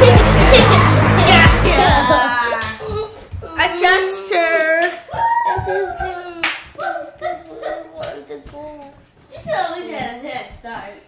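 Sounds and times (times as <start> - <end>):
children calling out: 0.0 - 8.6
hand clap: 6.4 - 7.3.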